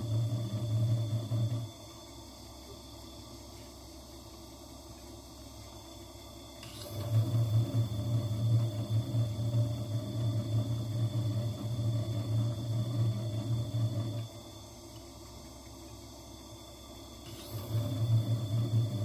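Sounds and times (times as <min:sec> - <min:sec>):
faint motor whine: 0:00.0 - 0:19.0
gemstone grinding on spinning lap: 0:06.6 - 0:08.6, 0:17.2 - 0:19.0.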